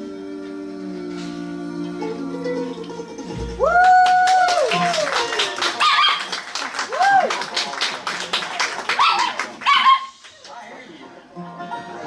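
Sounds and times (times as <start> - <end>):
strummed or clapped beat: 2.9 - 9.5
dog-like yelps: 9.0 - 10.1.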